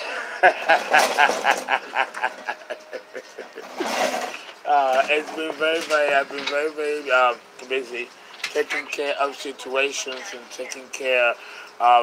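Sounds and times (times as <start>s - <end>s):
man laughing heartily: 0.0s - 4.0s.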